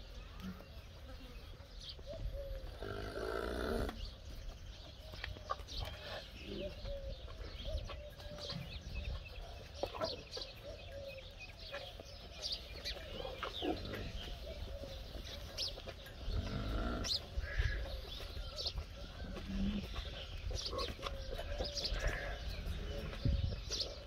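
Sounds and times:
small birds chirping: 0.0 - 24.0.

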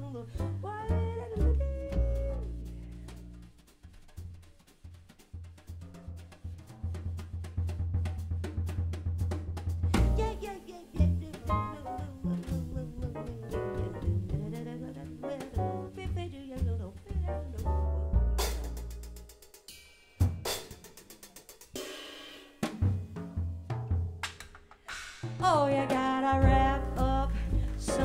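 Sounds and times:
double bass notes: 0.0 - 4.4, 5.4 - 19.4, 25.4 - 28.0
jazz band playing: 0.0 - 19.6, 25.4 - 28.0
drum and cymbal strokes: 2.2 - 16.1, 17.6 - 24.1, 24.8 - 28.0.

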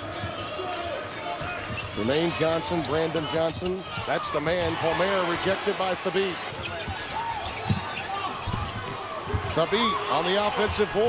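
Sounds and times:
crowd noise: 0.0 - 11.0
basketball bouncing on court: 6.5 - 11.0.

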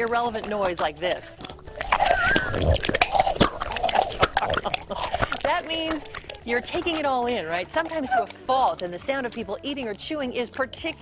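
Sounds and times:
mouth chewing with wet smacks: 0.0 - 11.0.

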